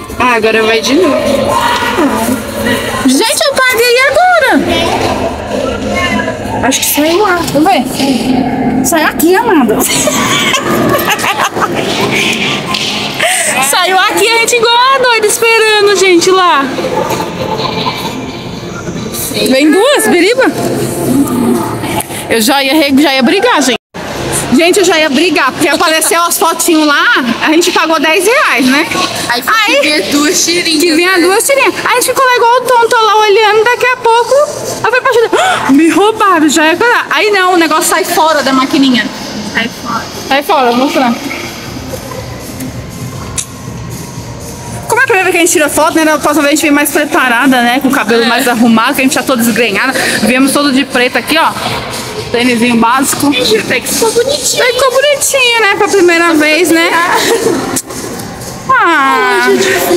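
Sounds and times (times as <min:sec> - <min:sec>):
faint background music: 0:00.0 - 0:59.9
murmur of voices: 0:00.0 - 0:59.9.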